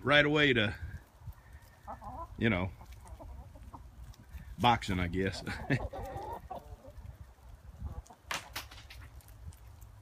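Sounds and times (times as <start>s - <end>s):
chickens clucking: 0.2s - 10.0s.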